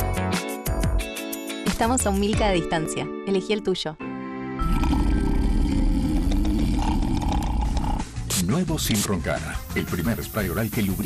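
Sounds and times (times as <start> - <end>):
person snoring loudly: 4.6 - 8.3.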